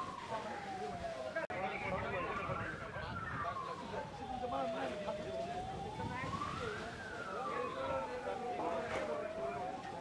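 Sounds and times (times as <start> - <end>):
crowd voices: 0.0 - 10.0
emergency siren wailing: 0.0 - 10.0.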